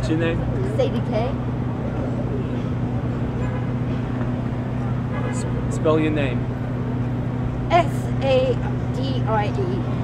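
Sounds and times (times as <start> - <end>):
street traffic: 0.0 - 10.0.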